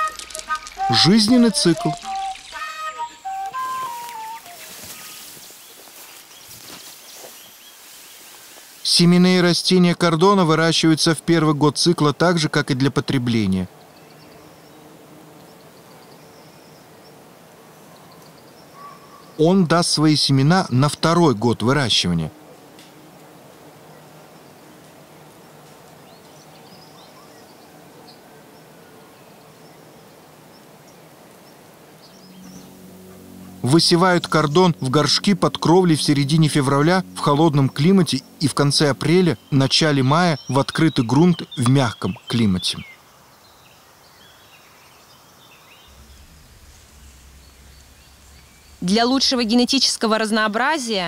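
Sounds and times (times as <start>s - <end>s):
faint bird chirps: 0.0s - 8.9s, 17.8s - 19.4s, 26.0s - 33.6s, 39.2s - 49.7s
steady low hiss: 0.0s - 51.0s
low steady hum: 28.8s - 42.6s, 45.5s - 51.0s.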